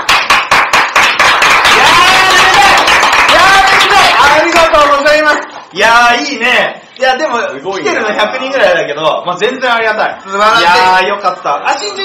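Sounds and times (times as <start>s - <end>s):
people clapping: 0.0s - 5.3s.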